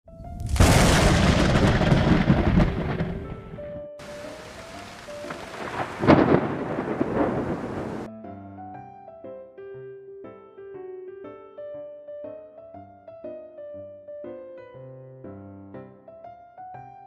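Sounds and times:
soft sustained music notes: 0:02.8 - 0:09.1.

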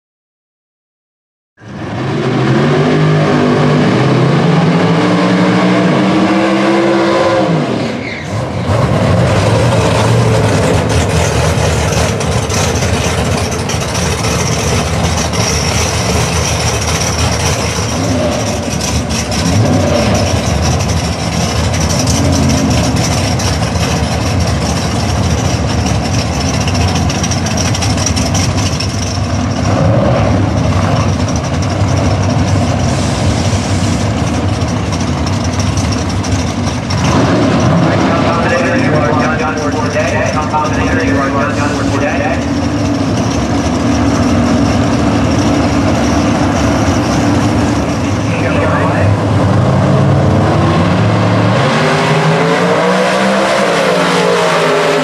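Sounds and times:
drag car burnout: 0:01.6 - 0:55.0
race car engines rough idle: 0:08.2 - 0:50.4.

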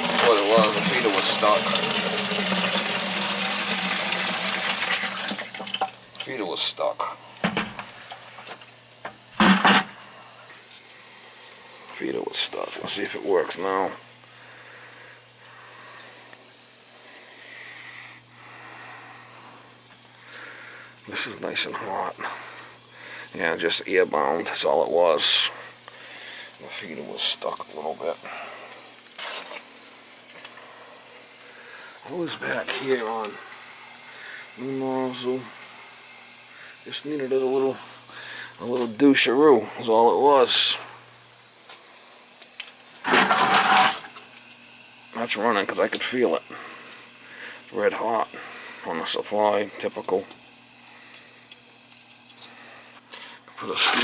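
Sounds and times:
water rushing through valve: 0:00.0 - 0:06.2
boiler humming: 0:00.0 - 0:54.0.

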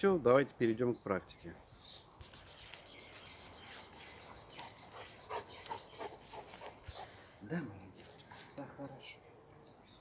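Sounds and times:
dog whistle short high blasts: 0:02.2 - 0:06.5.

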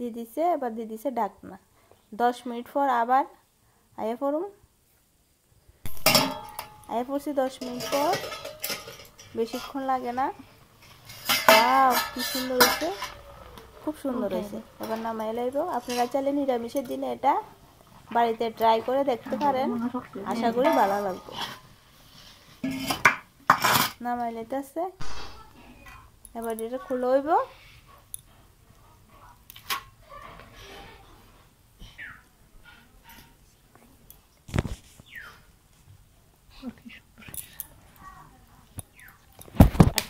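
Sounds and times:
metal lid clinking on iron pot: 0:05.9 - 0:09.8, 0:11.1 - 0:13.6
spoon scraping metal bowl: 0:06.0 - 0:17.2, 0:18.2 - 0:24.0.

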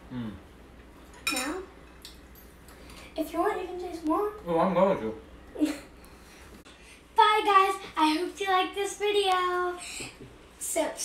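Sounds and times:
forks clinking on ceramic bowls: 0:01.2 - 0:01.6.

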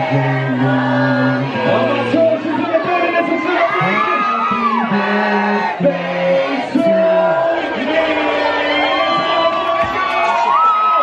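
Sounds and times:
man singing into microphone: 0:00.0 - 0:09.9
crowd noise: 0:00.0 - 0:11.0.

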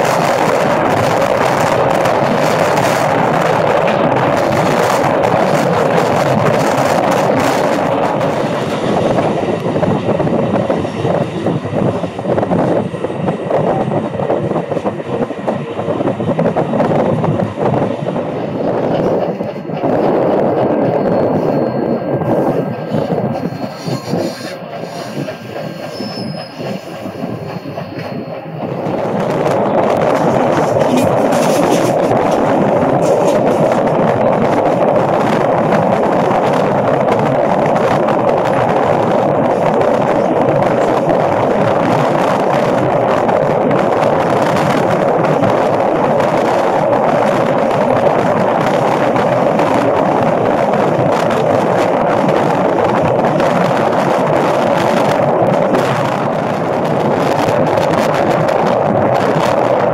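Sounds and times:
train rolling on rails: 0:00.0 - 0:59.9.

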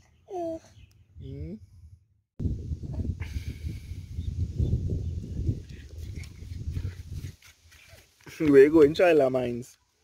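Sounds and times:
wind buffeting microphone: 0:01.2 - 0:07.6.

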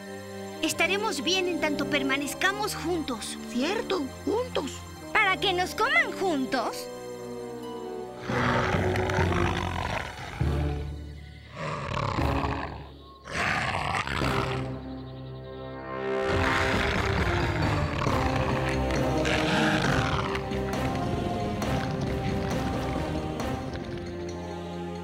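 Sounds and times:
cartoon background music: 0:00.0 - 0:25.0
dinosaur roars: 0:08.2 - 0:10.8, 0:11.5 - 0:14.8, 0:16.2 - 0:22.2.

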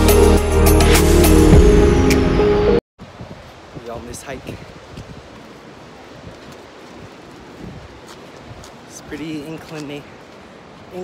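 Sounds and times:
wind on microphone: 0:03.0 - 0:08.9.

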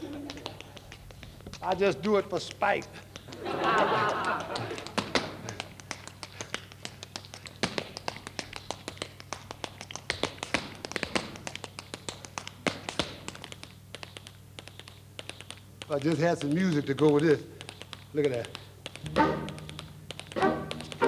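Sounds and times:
tap shoes on stage floor: 0:00.0 - 0:21.0
low steady hum: 0:16.8 - 0:21.0.

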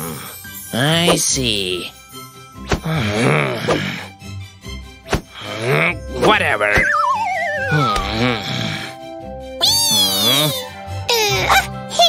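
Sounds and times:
background music: 0:00.0 - 0:12.0
squeaky cartoon cry: 0:09.6 - 0:12.0.

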